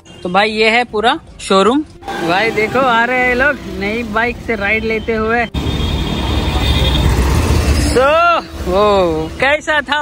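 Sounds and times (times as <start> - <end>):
motor vehicle rumble: 1.8 - 9.6
man calling out: 2.0 - 5.5.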